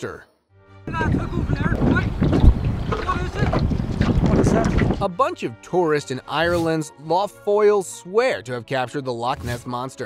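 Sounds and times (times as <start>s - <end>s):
wind buffeting microphone: 0.9s - 5.0s.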